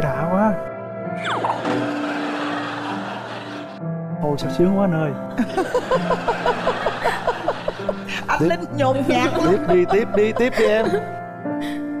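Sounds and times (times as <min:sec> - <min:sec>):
background music held note: 0:07.9 - 0:12.0.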